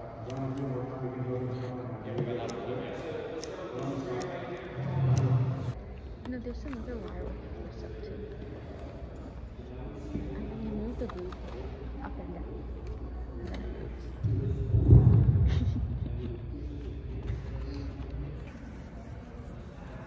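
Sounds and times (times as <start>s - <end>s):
indistinct chatter: 0.0s - 20.0s
low rumble: 14.2s - 16.5s.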